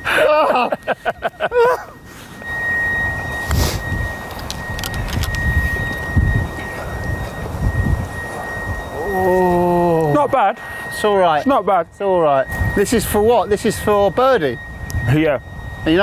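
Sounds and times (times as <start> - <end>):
people laughing: 0.0 - 2.0
wind buffeting microphone: 1.0 - 16.0.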